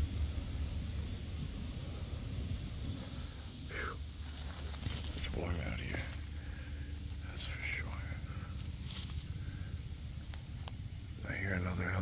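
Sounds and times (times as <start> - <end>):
helicopter rotor throbbing: 0.0 - 12.0.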